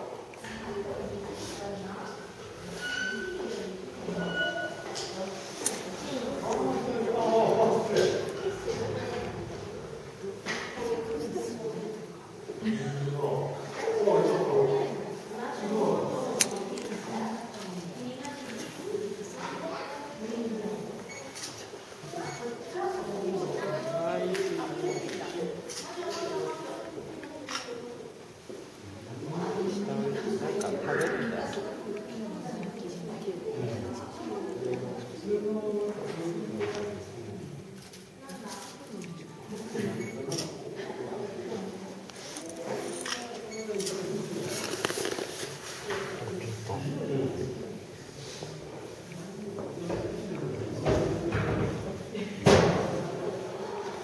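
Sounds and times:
people chattering: 0:00.0 - 0:54.0.

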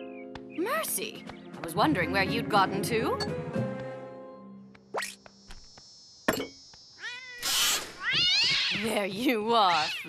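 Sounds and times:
cat meowing: 0:07.0 - 0:08.8.

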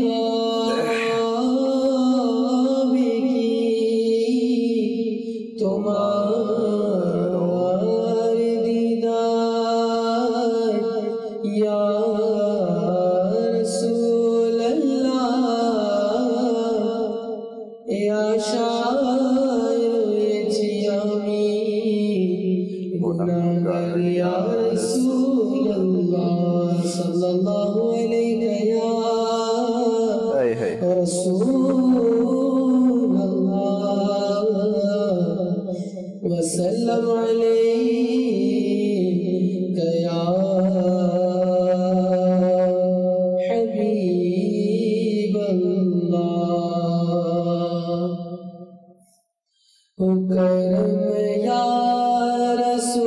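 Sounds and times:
man singing unaccompanied chant: 0:00.0 - 0:16.9, 0:17.9 - 0:35.5, 0:36.2 - 0:42.8, 0:43.4 - 0:48.0, 0:50.7 - 0:53.0
man reciting devotional poem: 0:00.0 - 0:17.1, 0:17.9 - 0:48.0, 0:50.0 - 0:53.0.

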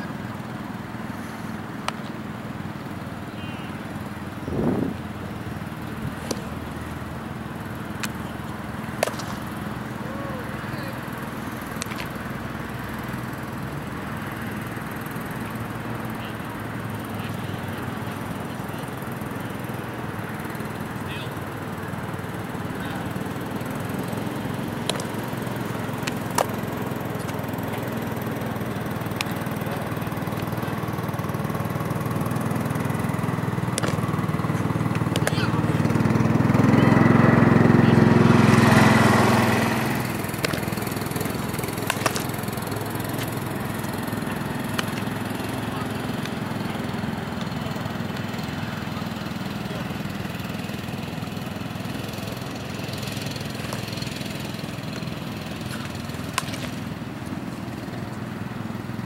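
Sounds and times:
motor engine droning: 0:00.0 - 0:59.0
baseball striking leather glove: 0:06.1 - 0:10.1, 0:11.0 - 0:12.4, 0:23.1 - 0:30.9, 0:32.3 - 0:36.1, 0:39.5 - 0:48.4, 0:52.8 - 0:57.8.

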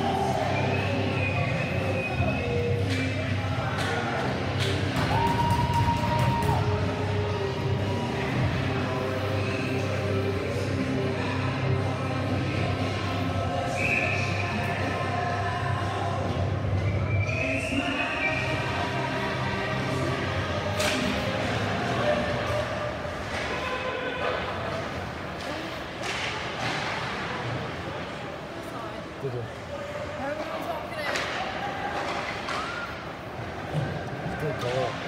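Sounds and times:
spectators' voices: 0:00.0 - 0:35.0.

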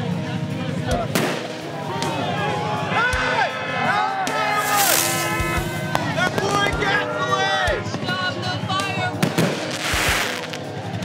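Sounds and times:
background music: 0:00.0 - 0:11.0
sharp cracks: 0:04.4 - 0:06.0
crackling burst of noise: 0:04.5 - 0:06.0.

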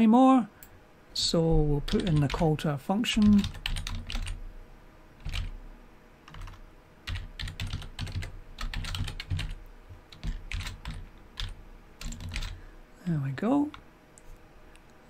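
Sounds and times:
typing on computer keyboard: 0:01.9 - 0:02.5, 0:03.2 - 0:04.4, 0:05.2 - 0:05.6, 0:06.3 - 0:12.6.

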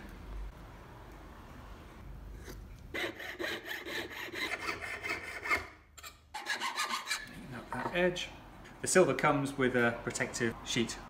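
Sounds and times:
saw cutting thin metal sheet: 0:02.9 - 0:05.7, 0:06.4 - 0:07.3.

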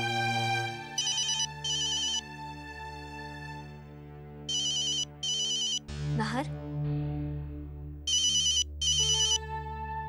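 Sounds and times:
warbling phone ringtone: 0:01.0 - 0:02.2, 0:04.5 - 0:05.8, 0:08.1 - 0:09.4.

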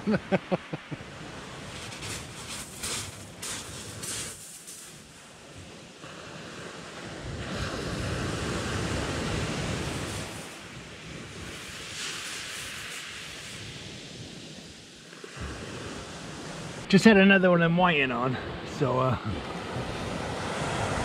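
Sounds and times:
surf breaking on shingle beach: 0:00.9 - 0:16.9.

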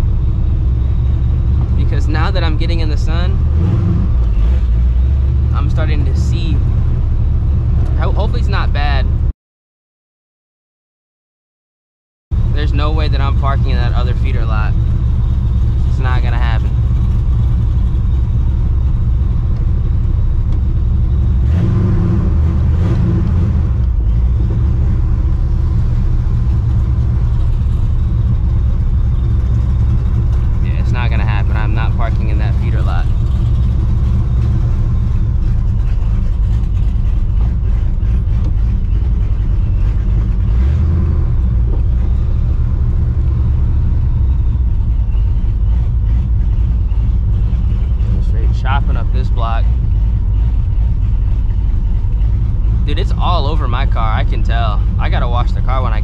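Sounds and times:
car engine rumbling: 0:00.0 - 0:09.3, 0:12.3 - 0:56.0.

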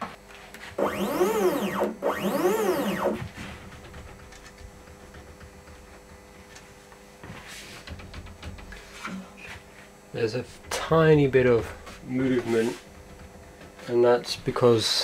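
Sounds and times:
stepper motors whining: 0:00.8 - 0:03.4.

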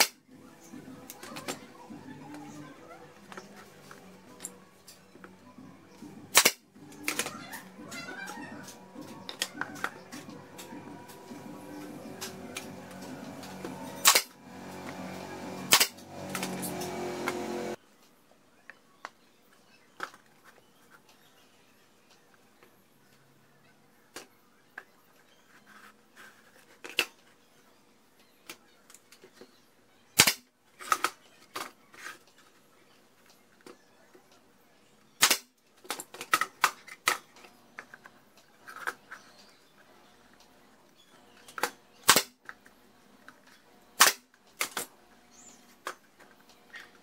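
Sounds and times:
pneumatic nailer shots: 0:00.0 - 0:00.2, 0:06.3 - 0:06.6, 0:14.0 - 0:14.4, 0:15.6 - 0:17.6, 0:30.2 - 0:30.5, 0:35.2 - 0:35.5, 0:42.0 - 0:42.4, 0:44.0 - 0:44.8.

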